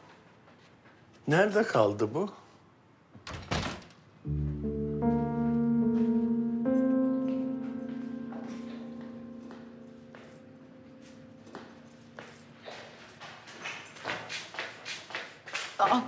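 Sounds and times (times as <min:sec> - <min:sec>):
held music chord: 0:04.3 - 0:12.6
footsteps on stone stairs: 0:11.0 - 0:16.0.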